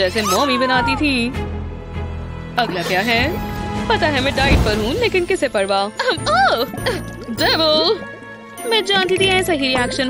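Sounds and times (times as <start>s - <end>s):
tinkling background music: 2.6s - 10.0s.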